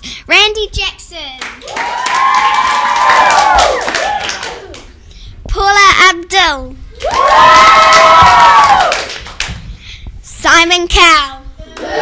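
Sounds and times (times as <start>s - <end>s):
children cheering: 1.6s - 4.8s, 7.0s - 9.1s.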